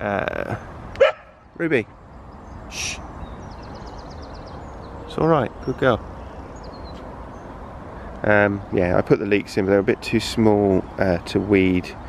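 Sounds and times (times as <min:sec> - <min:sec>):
outdoor background noise: 0:00.0 - 0:12.0
high bird chirps: 0:01.0 - 0:08.7.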